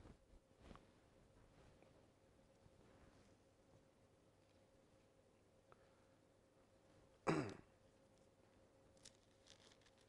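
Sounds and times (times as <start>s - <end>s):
man clearing throat: 7.2s - 7.7s.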